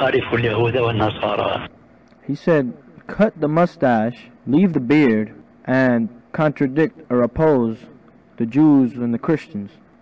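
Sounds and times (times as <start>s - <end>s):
man talking: 0.0s - 9.8s.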